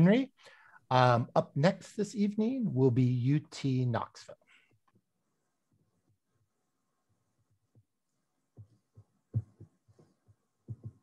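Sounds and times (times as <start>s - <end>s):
faint low thumps: 8.5s - 11.0s.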